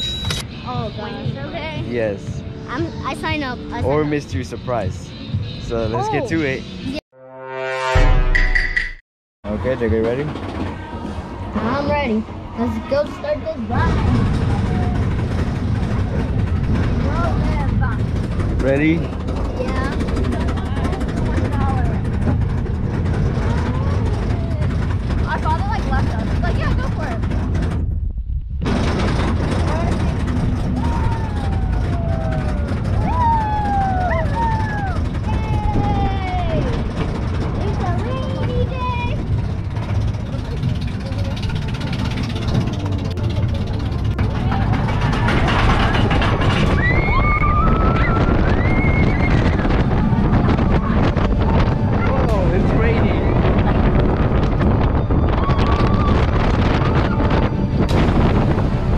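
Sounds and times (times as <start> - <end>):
roller coaster low rumble: 0.0 - 7.0, 9.4 - 58.9
wind on microphone: 13.7 - 40.2, 45.1 - 58.9.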